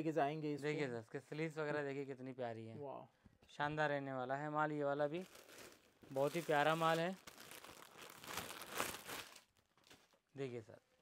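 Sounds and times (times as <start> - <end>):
plastic packet crinkling: 5.1 - 10.2.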